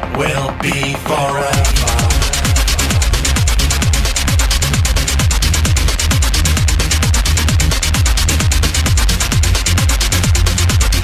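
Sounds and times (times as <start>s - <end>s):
deep bass: 0.0s - 11.0s
electronic dance music: 0.0s - 11.0s
pitch-dropping kick drum: 0.0s - 11.0s
fast hi-hat ticks: 1.5s - 11.0s.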